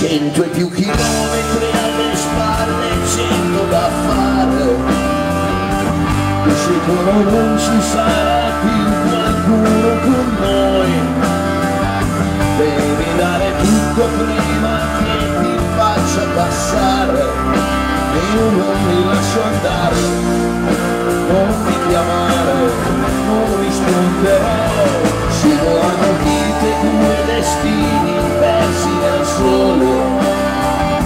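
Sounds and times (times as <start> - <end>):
bass guitar: 0.0 - 31.0
driving drum beat: 0.0 - 31.0
electric guitars: 0.0 - 31.0.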